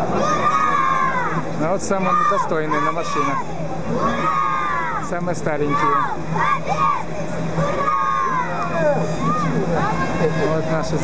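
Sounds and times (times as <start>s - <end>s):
crowd shouting and cheering: 0.0s - 11.0s
steady low hum: 0.0s - 11.0s.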